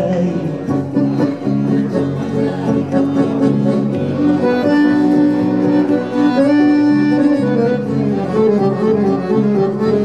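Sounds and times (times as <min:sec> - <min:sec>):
accordion chords: 0:00.0 - 0:10.0
double bass: 0:00.0 - 0:10.0
plucked guitar notes: 0:00.0 - 0:10.0.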